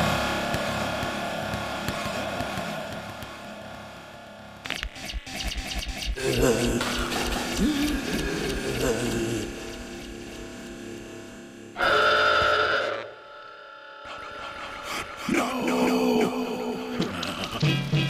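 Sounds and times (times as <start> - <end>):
background music: 0.0 - 5.4, 6.1 - 18.0
loud held tone: 11.6 - 13.9.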